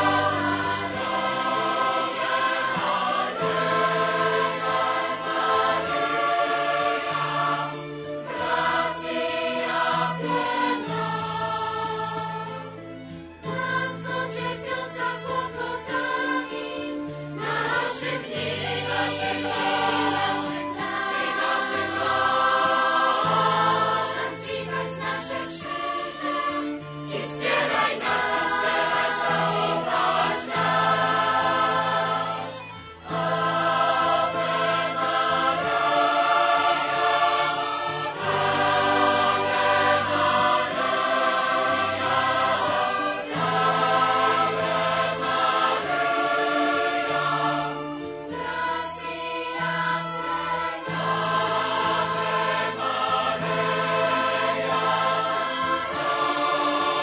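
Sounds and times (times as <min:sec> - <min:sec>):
choir singing: 0:00.0 - 0:57.0.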